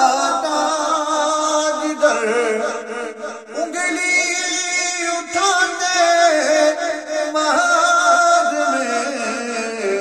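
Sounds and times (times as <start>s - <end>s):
man singing devotional song: 0.0s - 10.0s.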